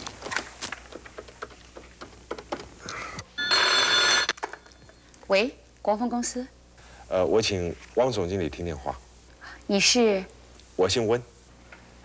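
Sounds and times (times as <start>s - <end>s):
desk telephone ringing: 3.4s - 5.0s.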